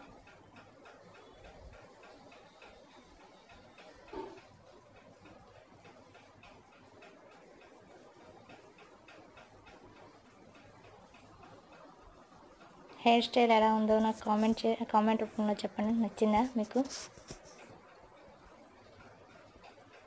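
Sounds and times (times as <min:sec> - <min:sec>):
faint even ticking: 0:00.0 - 0:20.0.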